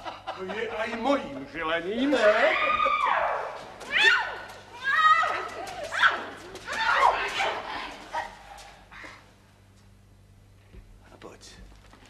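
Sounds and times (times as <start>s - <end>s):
woman wailing: 2.2s - 8.4s.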